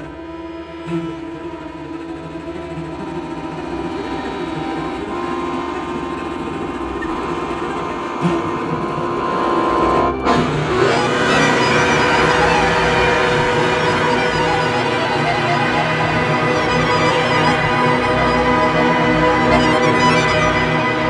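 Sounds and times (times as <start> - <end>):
chamber music sustained tones: 0.0 - 21.0.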